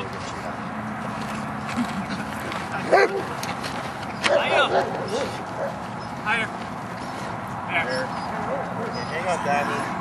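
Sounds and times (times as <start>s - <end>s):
dog barking: 2.9s - 3.3s, 4.2s - 5.8s.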